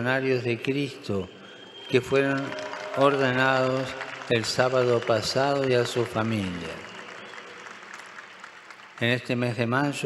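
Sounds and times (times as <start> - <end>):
large crowd applauding: 1.5 - 10.0.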